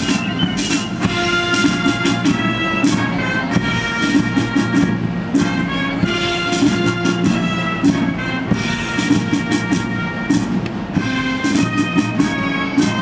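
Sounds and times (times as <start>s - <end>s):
drum beats: 0.0s - 13.0s
wind instruments: 0.0s - 13.0s.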